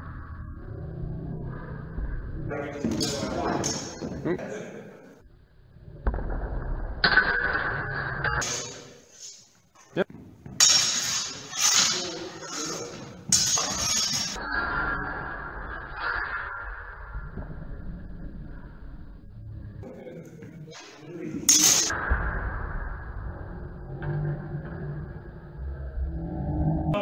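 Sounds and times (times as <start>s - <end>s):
swords clashing and scraping: 7.0s - 9.5s, 10.5s - 14.4s, 20.8s - 22.0s.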